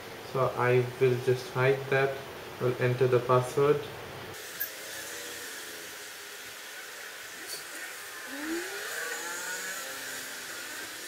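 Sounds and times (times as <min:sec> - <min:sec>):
steady background hiss: 0:00.0 - 0:11.0
short rising glide: 0:07.6 - 0:11.0.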